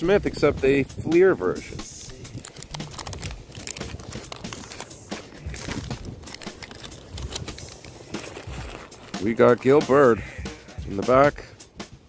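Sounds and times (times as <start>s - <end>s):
wrapper tearing and crinkling: 1.9s - 9.3s.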